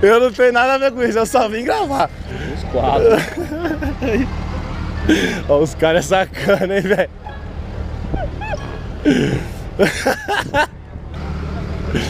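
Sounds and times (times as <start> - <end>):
people talking: 0.0 - 4.2, 4.8 - 7.4
steady low rumble: 2.0 - 12.0.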